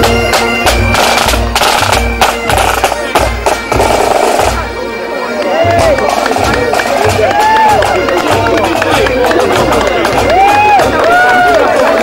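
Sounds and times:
marching drum beating: 0.0s - 4.7s, 5.6s - 11.9s
bagpipes: 0.0s - 12.0s
voices calling out: 2.8s - 12.0s.

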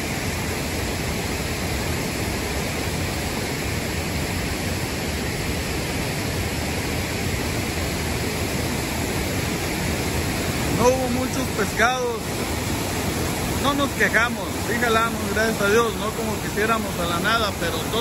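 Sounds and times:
water rushing over rock: 0.0s - 18.0s.

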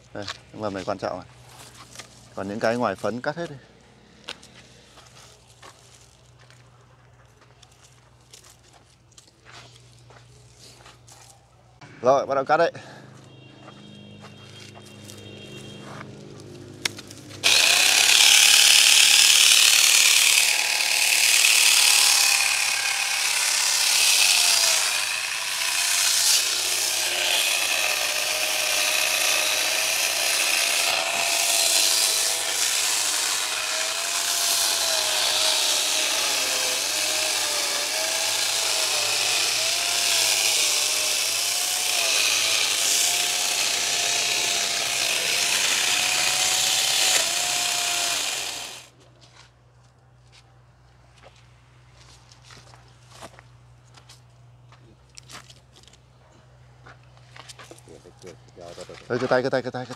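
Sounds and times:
cordless chainsaw cutting wood: 16.9s - 48.9s.

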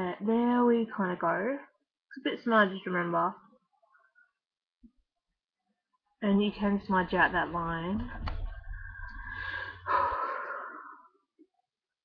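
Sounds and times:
woman breathing out: 8.6s - 11.1s.

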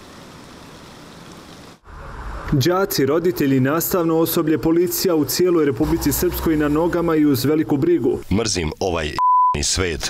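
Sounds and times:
steady outdoor hiss: 0.0s - 9.2s.

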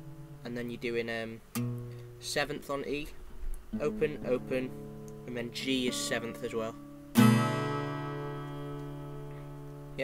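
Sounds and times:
acoustic guitar chord ringing: 0.0s - 0.8s, 1.5s - 3.0s, 3.7s - 10.0s.

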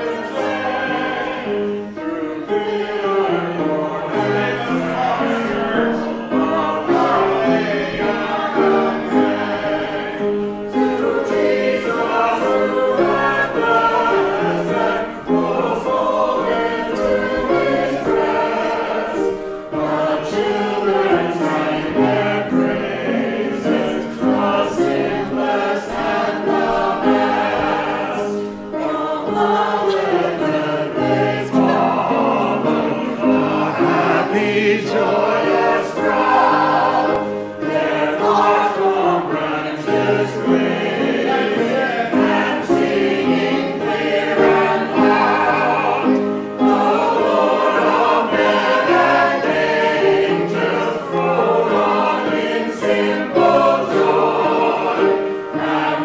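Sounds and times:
choir and congregation singing hymn: 0.0s - 56.0s
keyboard accompaniment: 0.0s - 56.0s.

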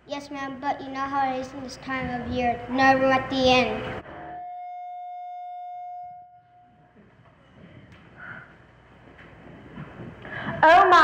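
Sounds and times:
held musical note: 4.0s - 7.0s.

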